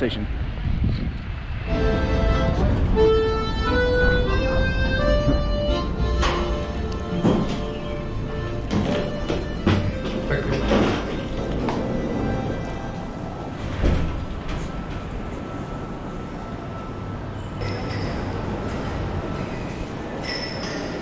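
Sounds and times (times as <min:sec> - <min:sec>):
rolling suitcase wheels: 0:03.5 - 0:16.2
heavy wooden door opening: 0:03.7 - 0:15.1.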